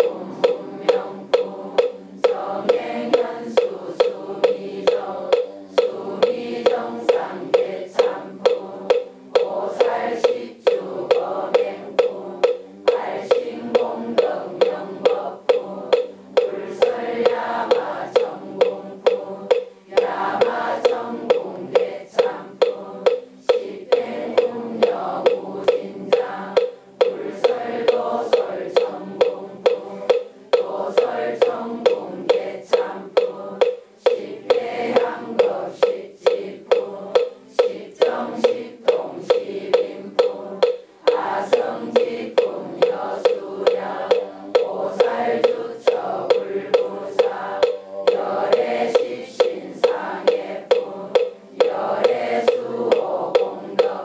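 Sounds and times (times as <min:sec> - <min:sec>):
congregation chanting in unison: 0:00.0 - 0:54.0
wooden fish struck in steady beat: 0:00.0 - 0:54.0.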